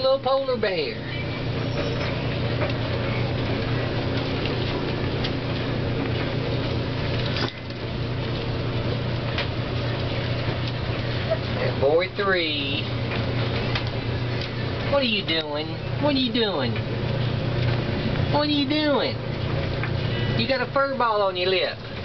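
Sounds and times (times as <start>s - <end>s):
low hum: 0.0s - 22.0s
puppies wrestling ticks and scuffs: 1.1s - 11.8s.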